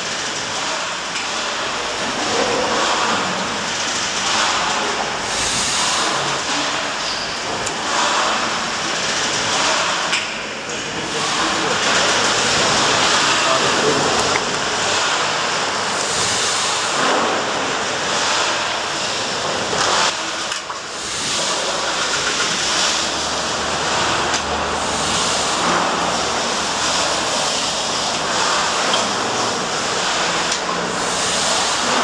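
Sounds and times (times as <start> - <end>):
steam engine hissing: 20.2 - 32.0.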